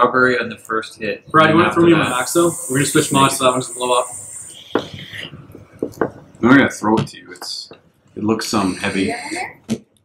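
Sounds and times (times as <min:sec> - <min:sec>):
vapour blown out hiss: 0:02.0 - 0:05.4
faint clicks and taps: 0:04.8 - 0:06.4.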